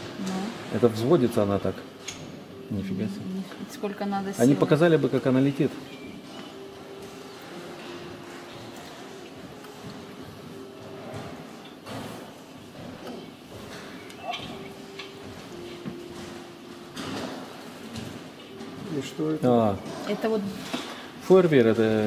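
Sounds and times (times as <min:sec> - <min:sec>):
faint voices in a hall: 0:00.0 - 0:22.0.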